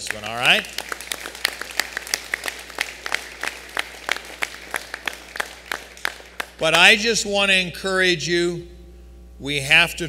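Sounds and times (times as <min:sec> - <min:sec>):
individual hand claps: 0:00.0 - 0:06.6
audience applauding: 0:00.0 - 0:06.8.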